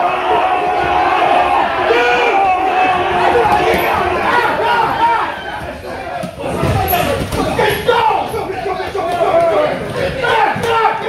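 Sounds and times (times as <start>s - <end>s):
crowd shouting and yelling: 0.0s - 11.0s.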